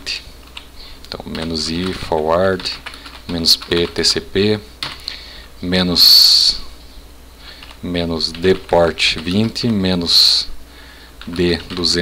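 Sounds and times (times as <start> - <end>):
man speaking: 0.0 - 0.3, 1.1 - 4.8, 5.6 - 6.8, 7.8 - 10.6, 11.2 - 12.0.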